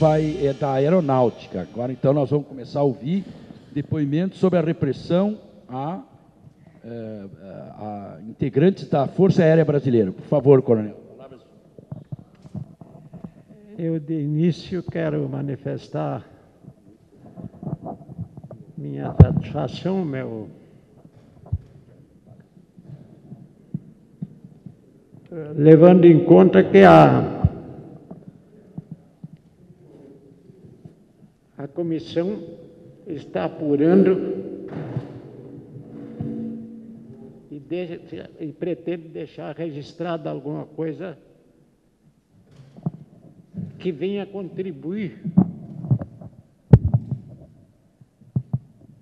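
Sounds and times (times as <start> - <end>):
microphone handling thumps: 16.6 - 19.8, 45.2 - 47.6
microphone handling thuds: 45.3 - 47.5.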